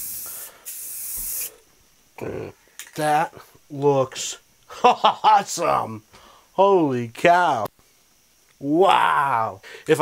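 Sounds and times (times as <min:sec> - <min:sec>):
aerosol can spraying: 0:00.0 - 0:01.6.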